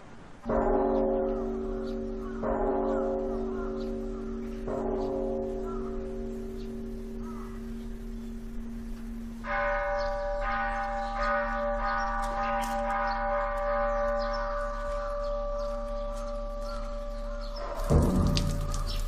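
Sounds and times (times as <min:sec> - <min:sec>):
loud low-pitched sound: 0:17.8 - 0:19.0.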